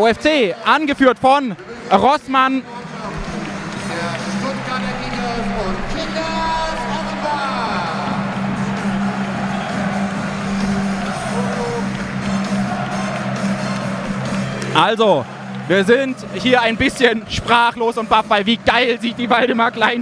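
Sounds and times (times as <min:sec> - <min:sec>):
large crowd noise: 0:00.0 - 0:20.0
music over stadium loudspeakers: 0:00.0 - 0:20.0.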